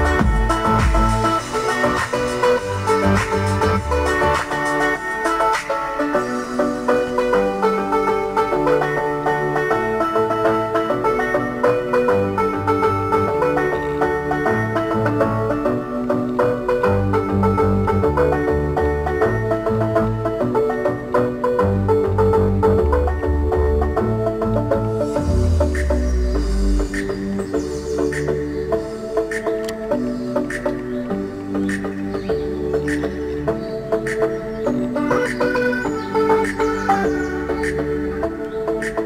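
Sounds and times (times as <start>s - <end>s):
instrumental background music: 0.0s - 39.0s.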